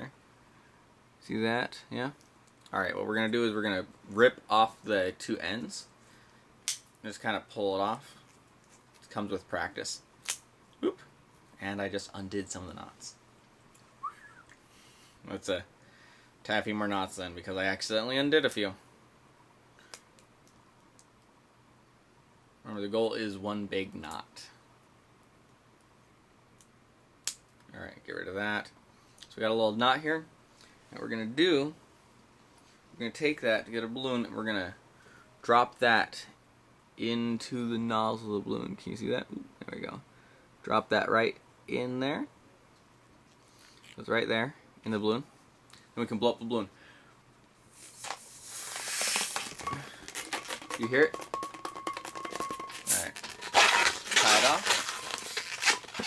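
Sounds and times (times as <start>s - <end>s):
balloon being blown up: 47.8s - 56.0s
latex knot rattling in balloon: 48.0s - 56.0s.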